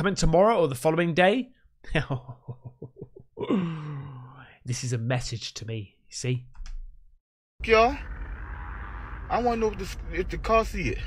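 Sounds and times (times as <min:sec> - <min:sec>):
man laughing: 0:01.9 - 0:03.8.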